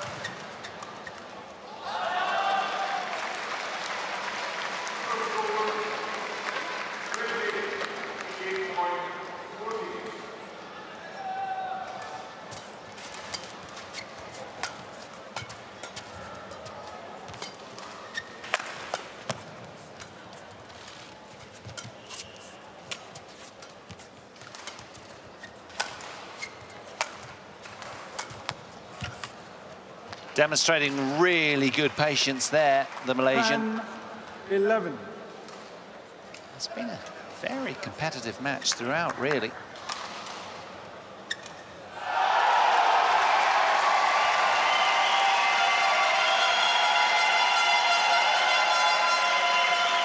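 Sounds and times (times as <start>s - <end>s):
indoor arena murmur: 0.0s - 50.0s
people's voices: 31.2s - 35.1s.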